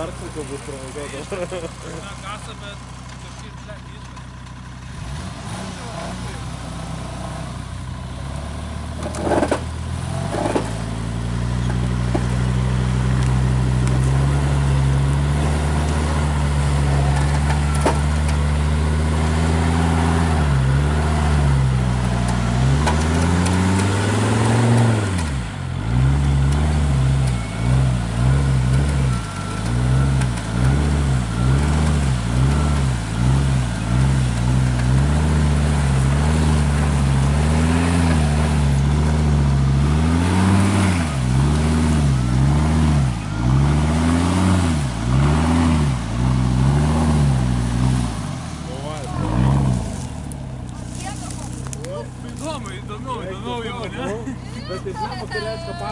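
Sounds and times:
car engine under load: 0:00.0 - 0:55.9.

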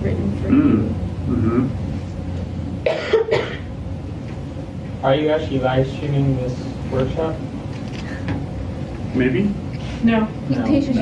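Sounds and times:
person coughing: 0:00.5 - 0:01.8, 0:02.8 - 0:03.7.

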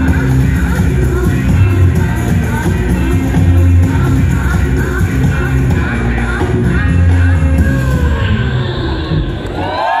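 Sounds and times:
rock band bass and guitar: 0:00.0 - 0:09.1
high shout: 0:09.3 - 0:10.0
audience cheering: 0:09.4 - 0:10.0.

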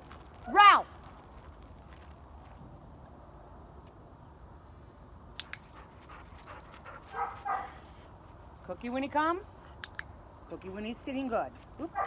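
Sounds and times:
dog running on gravel: 0:00.0 - 0:02.6.

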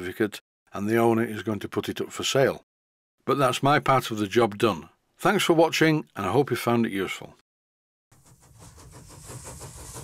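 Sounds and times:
steam engine puffing: 0:08.2 - 0:10.0.

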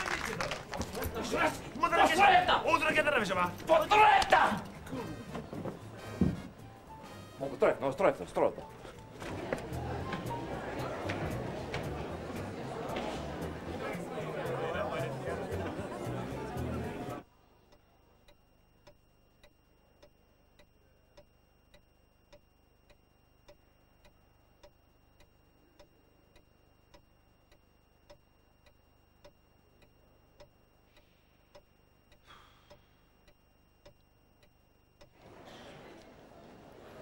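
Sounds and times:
murmur of chatter: 0:07.4 - 0:17.3, 0:35.1 - 0:37.0
clock ticking: 0:17.2 - 0:35.2.

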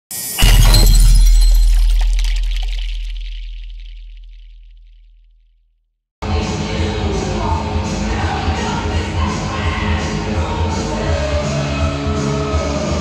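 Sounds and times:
heavy crackling crash: 0:00.4 - 0:05.0
deep boom: 0:00.4 - 0:05.3.

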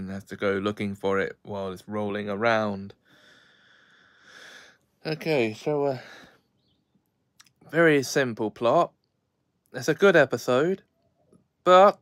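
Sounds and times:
man breathing softly: 0:03.0 - 0:05.0, 0:05.9 - 0:06.6.

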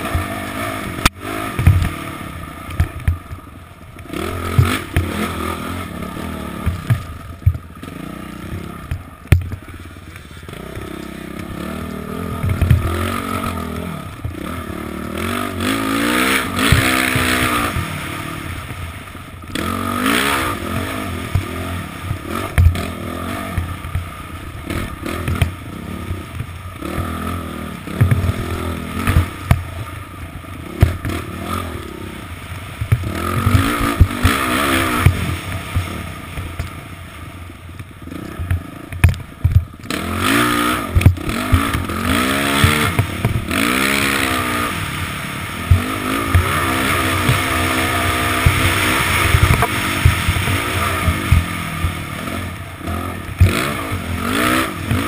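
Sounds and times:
bike knocks and rattles: 0:00.0 - 0:05.3, 0:05.9 - 0:11.6, 0:12.2 - 0:14.6, 0:15.6 - 0:18.9, 0:19.5 - 0:31.5, 0:32.8 - 0:36.9, 0:37.7 - 0:44.0, 0:45.6 - 0:55.0
dirt bike engine revving: 0:00.0 - 0:55.0.

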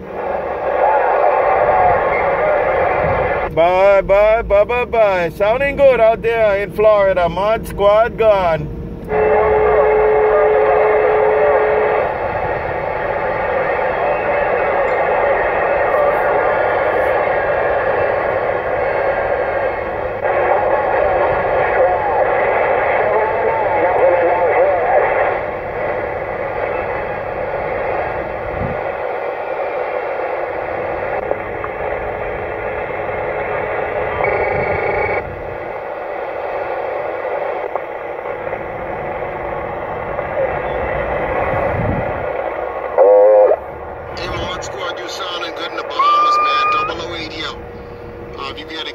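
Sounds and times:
radio static: 0:00.0 - 0:48.9
steady tone: 0:00.0 - 0:48.9.

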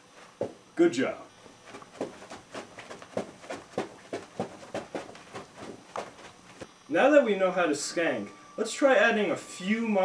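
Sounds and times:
sneaker footfalls on carpet: 0:00.2 - 0:00.7, 0:01.4 - 0:06.7.

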